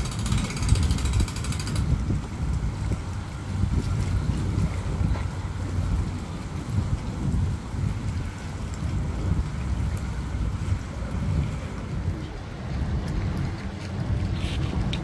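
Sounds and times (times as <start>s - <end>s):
wind buffeting microphone: 0.0s - 15.0s.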